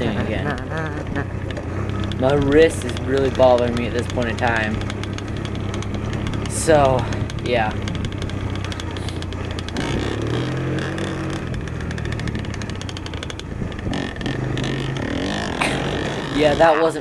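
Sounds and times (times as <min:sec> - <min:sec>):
dirt bike engine running: 0:00.0 - 0:17.0
rattle of clicks from bike jolting: 0:01.2 - 0:17.0.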